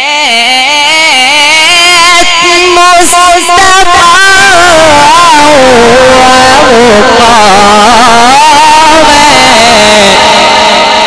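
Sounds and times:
man reciting melodically: 0:01.1 - 0:11.0.

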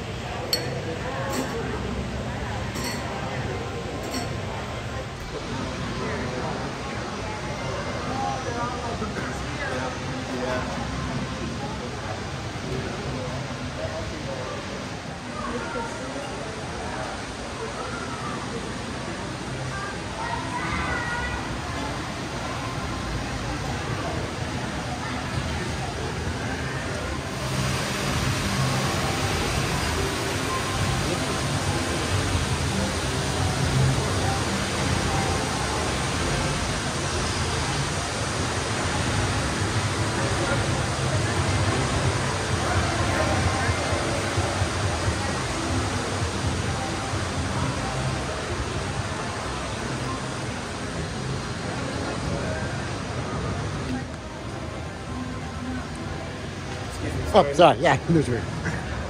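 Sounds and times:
crowd chatter: 0:00.0 - 0:59.0.

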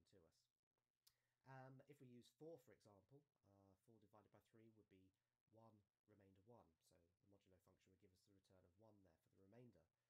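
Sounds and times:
man narrating: 0:00.0 - 0:00.5, 0:01.5 - 0:09.9.

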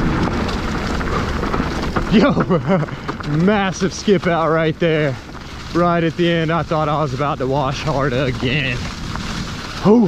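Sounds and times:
bike rattling: 0:00.0 - 0:10.0
tyres on loose dirt: 0:00.0 - 0:10.0.

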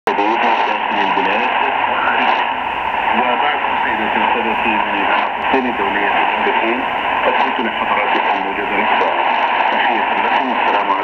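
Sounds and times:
radio speech through loudspeaker: 0:00.0 - 0:11.0
static hiss: 0:00.1 - 0:11.0.

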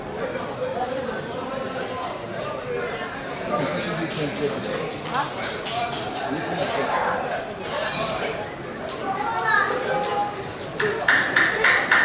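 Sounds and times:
crowd chatter: 0:00.0 - 0:12.0
children's voices: 0:06.6 - 0:10.6.

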